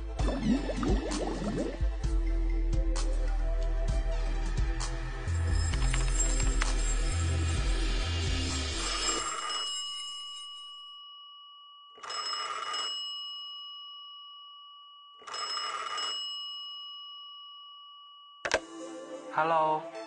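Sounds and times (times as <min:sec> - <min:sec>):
background music: 0:00.0 - 0:09.5, 0:18.5 - 0:20.0
telephone bell ringing: 0:08.8 - 0:18.6.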